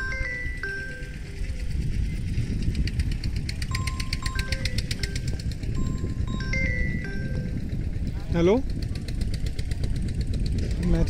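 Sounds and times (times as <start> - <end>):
phone ringtone chime: 0.0 - 1.6, 3.7 - 8.0
rapid fine ticking: 0.0 - 8.0
wind noise on microphone: 0.0 - 11.0.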